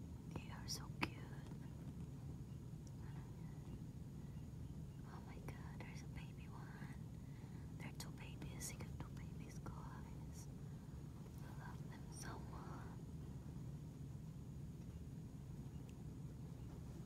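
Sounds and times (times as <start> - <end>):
steady low hum: 0.0 - 17.0
person whispering: 0.3 - 1.7, 5.0 - 7.0, 7.8 - 10.5, 11.4 - 13.0.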